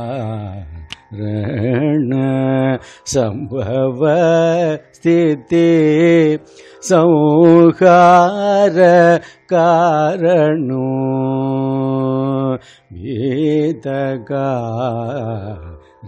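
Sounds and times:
man singing: 0:00.0 - 0:16.0.

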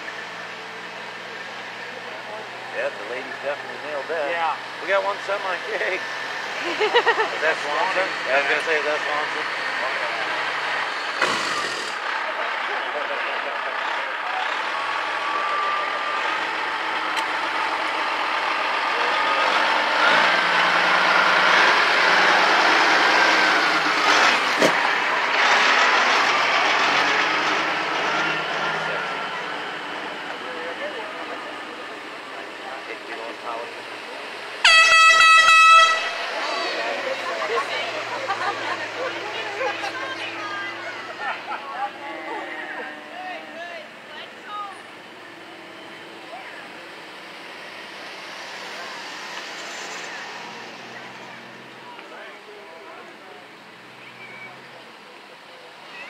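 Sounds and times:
vehicles rolling past: 0:00.0 - 0:56.0
voices: 0:00.0 - 0:56.0
vehicle horn blast: 0:34.6 - 0:36.4.

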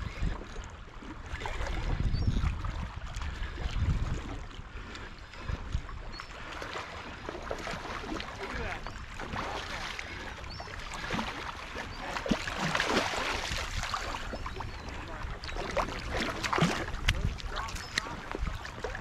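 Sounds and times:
waves lapping against rocks: 0:00.0 - 0:19.0
wind gusting on microphone: 0:01.2 - 0:04.5, 0:12.3 - 0:19.0.

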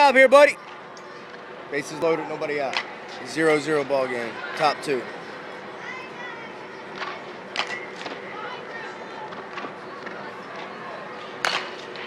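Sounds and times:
faint spectator chatter: 0:00.8 - 0:12.0
bat cracking a ball: 0:11.4 - 0:12.0.

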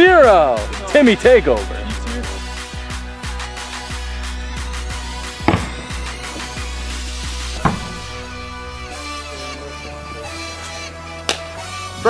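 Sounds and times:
background music with steady beat: 0:00.0 - 0:12.0
plastic bat hitting ball crack: 0:05.5 - 0:06.6.

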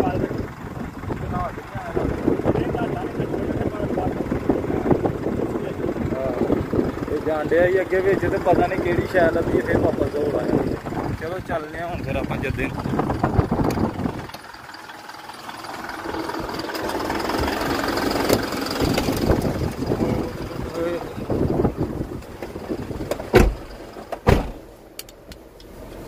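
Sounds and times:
wind: 0:00.0 - 0:26.0
person climbing into truck cab: 0:22.2 - 0:24.7
truck door slamming: 0:22.3 - 0:24.7.

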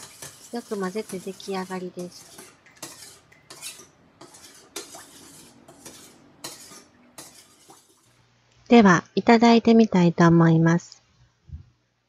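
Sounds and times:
metal spoon stirring in metal bowl: 0:00.0 - 0:08.2.

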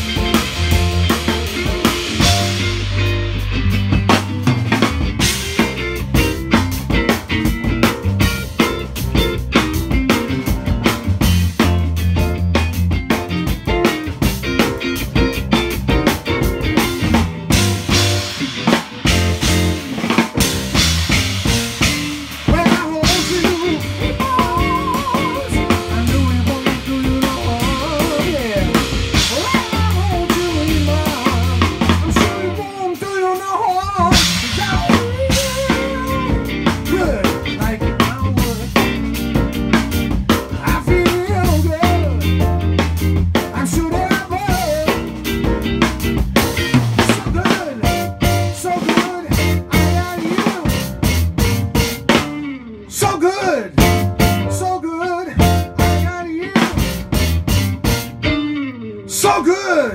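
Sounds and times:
wavering melodic lead line: 0:00.0 - 0:53.0, 0:53.8 - 0:59.1
live band playing: 0:00.0 - 0:59.9.

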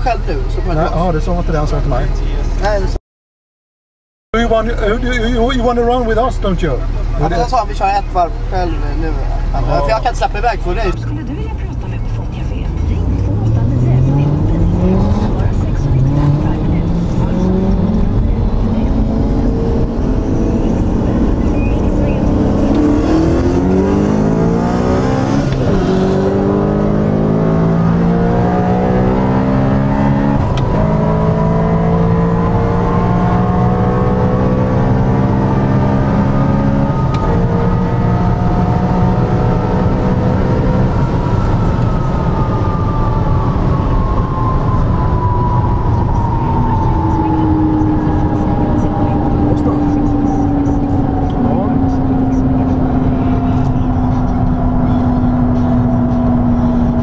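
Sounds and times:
car engine accelerating: 0:00.0 - 0:03.0, 0:04.4 - 0:57.0.

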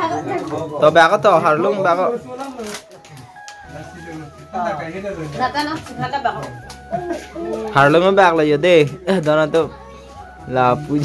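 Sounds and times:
people talking: 0:03.6 - 0:11.0.

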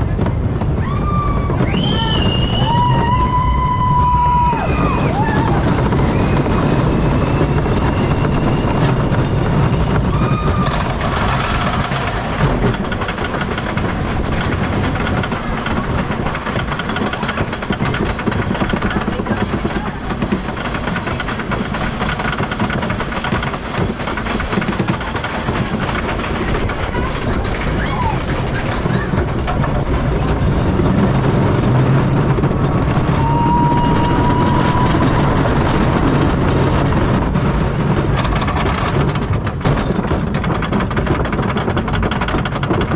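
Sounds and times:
roller coaster rumbling on track: 0:00.0 - 0:42.9.

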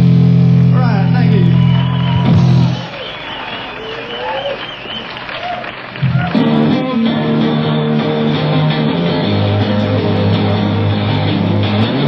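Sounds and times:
people shouting: 0:01.2 - 0:07.0
audience applauding and cheering: 0:01.3 - 0:07.3
warbling whistle: 0:01.4 - 0:05.7.

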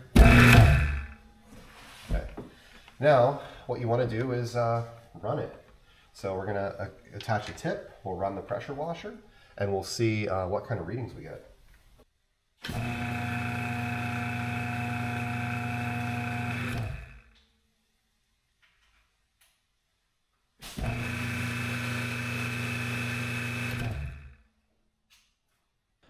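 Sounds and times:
pressure washer motor humming: 0:00.0 - 0:01.2, 0:12.7 - 0:17.2, 0:20.7 - 0:24.3.

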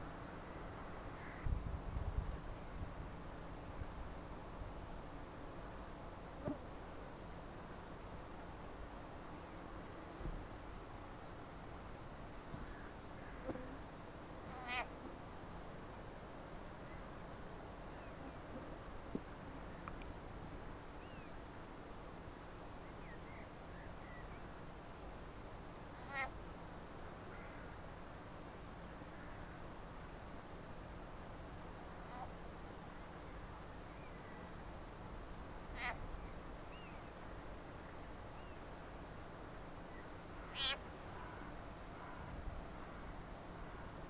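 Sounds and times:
frog quack-like call: 0:01.1 - 0:01.5, 0:14.4 - 0:15.0, 0:26.0 - 0:26.4, 0:31.9 - 0:32.4, 0:35.7 - 0:36.1, 0:40.4 - 0:42.2
faint bird chirp: 0:21.0 - 0:21.4, 0:22.8 - 0:24.5, 0:35.7 - 0:37.2, 0:37.8 - 0:38.7
animal chirp: 0:40.5 - 0:40.8.

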